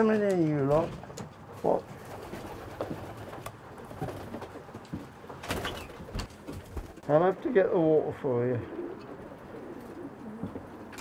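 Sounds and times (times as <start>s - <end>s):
pigeons cooing: 8.5s - 11.0s.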